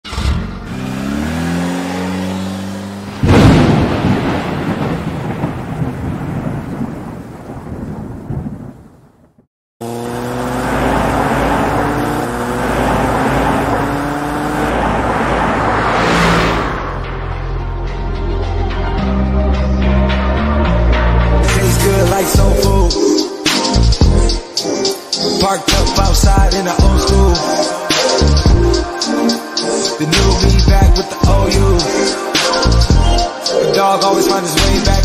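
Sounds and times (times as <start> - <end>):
car engine revving: 0.0 - 4.4, 9.8 - 18.2
rushing noise: 1.2 - 6.0, 10.6 - 18.4
loud thunder-like boom: 3.2 - 8.8.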